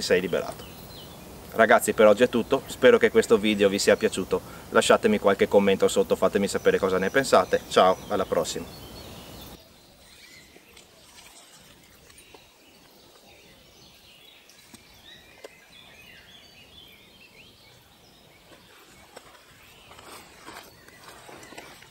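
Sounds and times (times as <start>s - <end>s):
small birds chirping: 0.0s - 21.9s
soft rustles: 18.4s - 21.9s.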